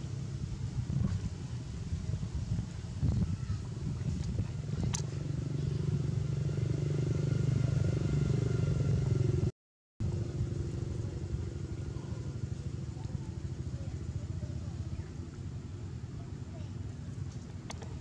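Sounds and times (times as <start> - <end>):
low motor hum: 0.0 - 18.0.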